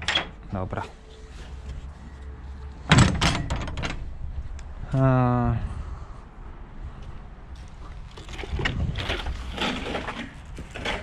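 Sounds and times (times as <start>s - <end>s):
wooden door banging and rattling: 2.9s - 4.1s.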